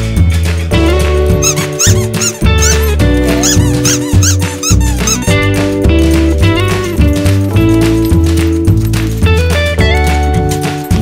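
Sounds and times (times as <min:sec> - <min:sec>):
background music with bass line: 0:00.0 - 0:11.0
squeaky dog toy squeaking: 0:01.4 - 0:05.6.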